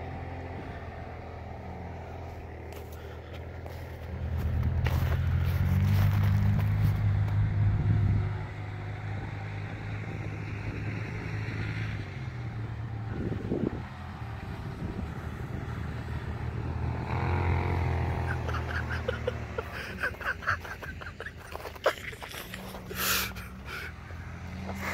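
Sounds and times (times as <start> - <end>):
vehicle engine humming: 0.0 - 24.9.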